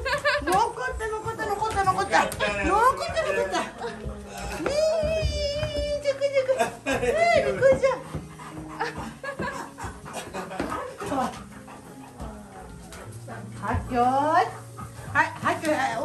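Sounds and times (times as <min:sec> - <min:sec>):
background music: 0:00.0 - 0:16.0
dogs vocalizing excitedly: 0:08.0 - 0:15.6.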